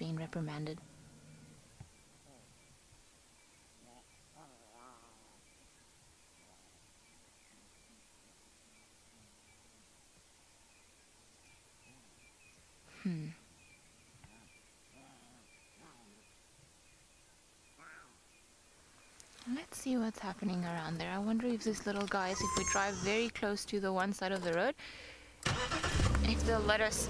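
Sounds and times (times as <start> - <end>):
lions calling: 3.8 - 5.6, 14.2 - 16.3, 21.9 - 23.3.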